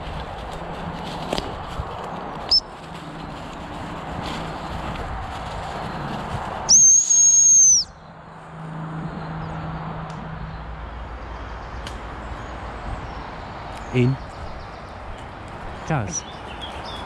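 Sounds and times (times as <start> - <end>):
high-pitched training whistle: 6.7 - 7.9.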